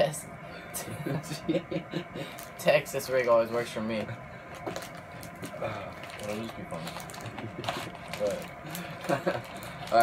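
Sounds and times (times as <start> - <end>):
plastic packaging crinkling: 4.5 - 10.0.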